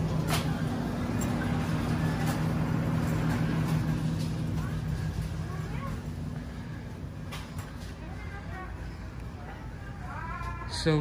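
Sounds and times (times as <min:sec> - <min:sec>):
low hum and rumble: 0:00.0 - 0:10.7
faint distant voices: 0:00.0 - 0:11.0.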